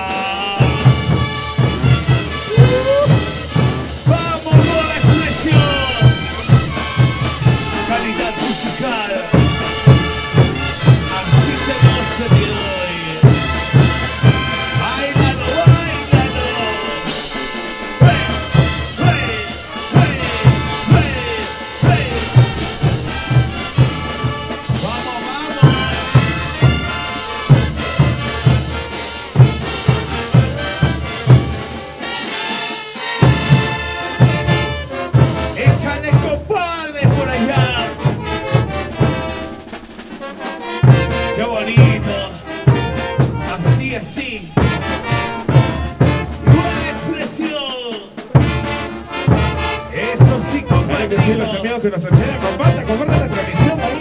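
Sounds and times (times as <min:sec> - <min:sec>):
bass drums and crash cymbals: 0:00.0 - 0:36.4
brass band playing: 0:00.0 - 0:54.0.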